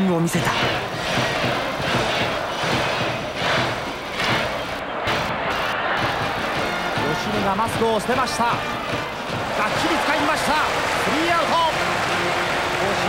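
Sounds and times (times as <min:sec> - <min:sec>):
stadium crowd cheering: 0:00.0 - 0:13.0
music: 0:00.3 - 0:13.0.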